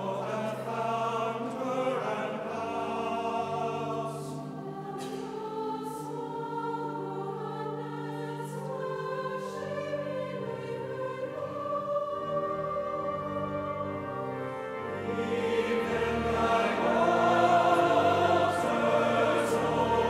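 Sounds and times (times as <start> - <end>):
choir singing long chords: 0.0 - 20.0.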